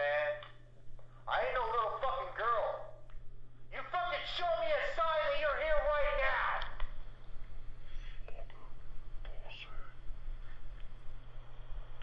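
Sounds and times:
steady low hum: 0.0s - 12.0s
faint whispered voice: 7.9s - 10.8s.

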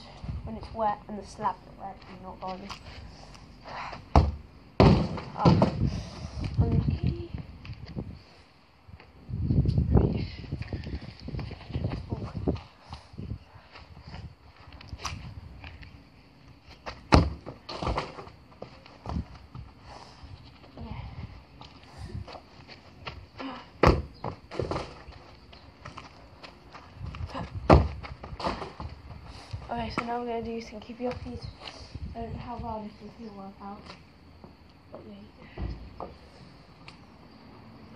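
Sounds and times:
crutches and feet on turf: 0.0s - 37.2s
football being kicked: 4.1s - 5.8s, 17.1s - 18.3s, 23.8s - 25.0s, 27.7s - 28.9s.

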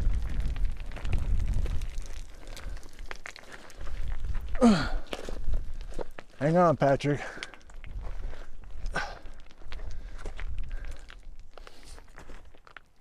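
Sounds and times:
boots crunching on loose stones: 0.0s - 13.0s
stones clicking and rattling: 0.0s - 13.0s
person sighing: 4.5s - 5.2s, 8.9s - 9.4s.

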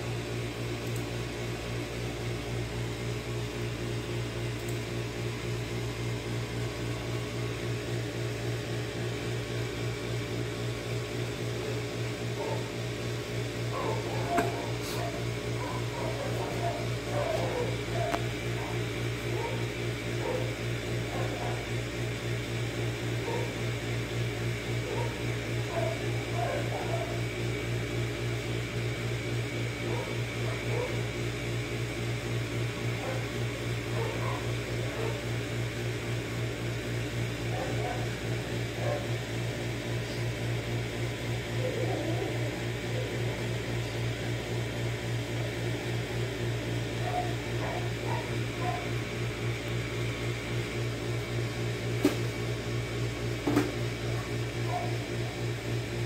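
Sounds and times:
low machine hum: 0.0s - 56.0s.

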